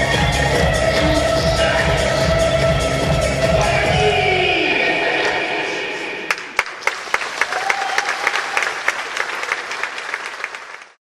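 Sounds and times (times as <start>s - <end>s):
dance music: 0.0s - 6.3s
audience applauding: 6.3s - 11.0s.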